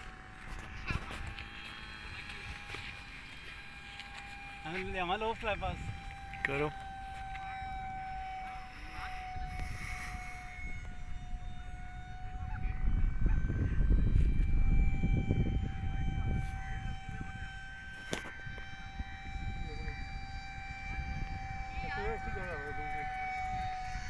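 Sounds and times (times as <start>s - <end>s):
model plane motors whining: 0.0s - 24.0s
wind rumble on microphone: 0.0s - 24.0s.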